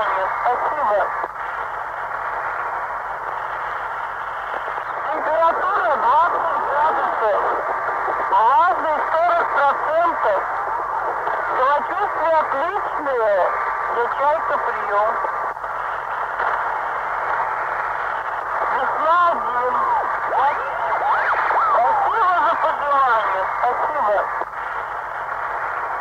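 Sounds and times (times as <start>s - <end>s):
tinny radio voice: 0.0s - 1.2s, 5.0s - 7.6s, 8.3s - 10.5s, 11.4s - 15.3s, 18.7s - 24.4s
steady low hum: 0.0s - 26.0s.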